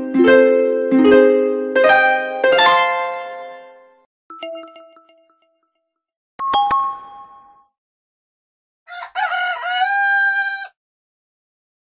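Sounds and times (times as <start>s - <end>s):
bright ringtone chimes: 4.3s - 5.4s, 6.4s - 7.7s
recorded rooster crow: 8.9s - 10.8s.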